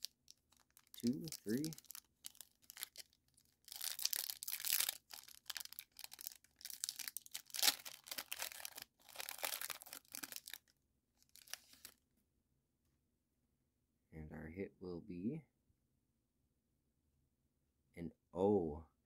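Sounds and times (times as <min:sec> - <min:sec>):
foil wrapper tearing and crinkling: 0:00.0 - 0:11.9.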